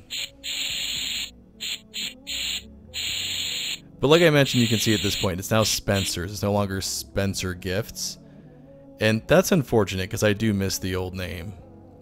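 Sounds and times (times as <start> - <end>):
spray paint hiss: 0.0 - 3.8, 4.4 - 5.3
faint background music: 0.0 - 12.0.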